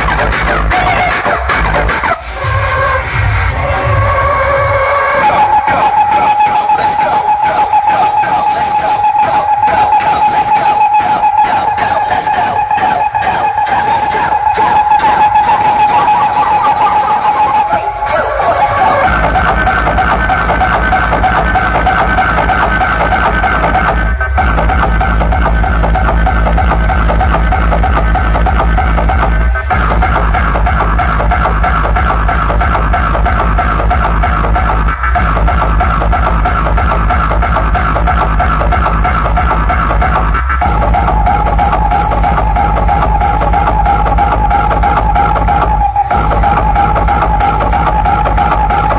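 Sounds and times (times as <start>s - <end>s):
loud music with steady beat: 0.0s - 48.9s.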